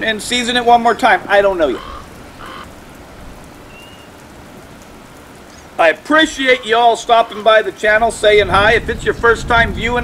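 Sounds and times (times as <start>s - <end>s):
rain hissing: 0.0s - 10.0s.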